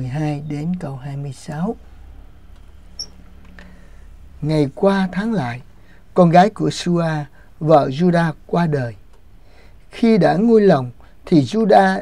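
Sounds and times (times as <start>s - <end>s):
faint low hum: 0.0s - 12.0s
high-pitched squeak: 3.0s - 3.2s.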